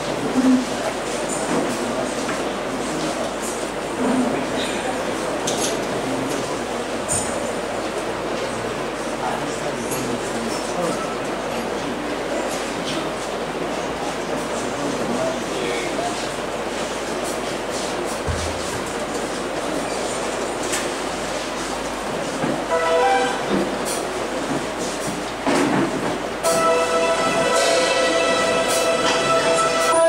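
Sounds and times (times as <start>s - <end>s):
murmur of indistinct voices: 0.0s - 30.0s
held musical chord: 22.7s - 23.6s, 26.4s - 30.0s
music: 26.5s - 30.0s.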